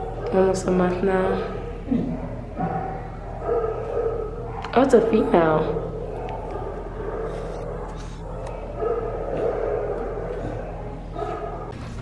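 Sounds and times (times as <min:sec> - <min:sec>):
dogs vocalizing faintly: 0:00.0 - 0:11.8
steady low hum: 0:00.0 - 0:12.0.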